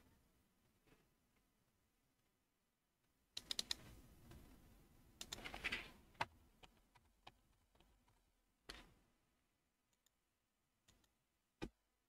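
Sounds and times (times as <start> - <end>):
keyboard keystrokes: 3.4 - 3.8.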